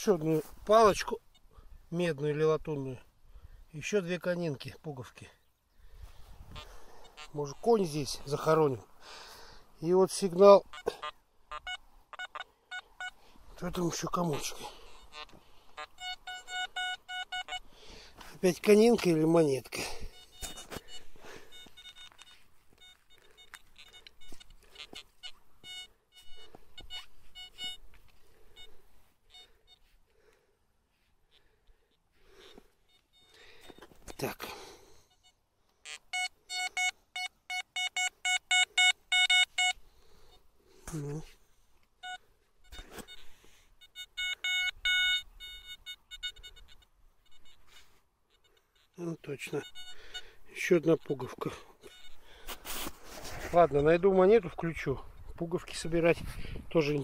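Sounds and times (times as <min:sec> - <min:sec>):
metal detector beeping: 0:06.5 - 0:08.6, 0:10.1 - 0:29.9, 0:31.3 - 0:41.3, 0:41.9 - 0:54.9
soil scraping and crunching: 0:50.6 - 0:54.9.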